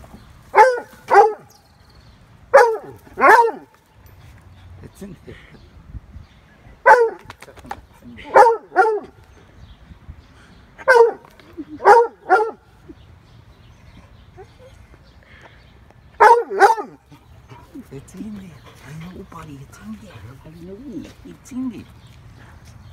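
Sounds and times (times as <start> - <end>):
dog barking: 0.6 - 1.5, 2.5 - 3.7, 6.8 - 7.2, 8.3 - 9.1, 10.8 - 11.2, 11.8 - 12.6, 16.2 - 17.0.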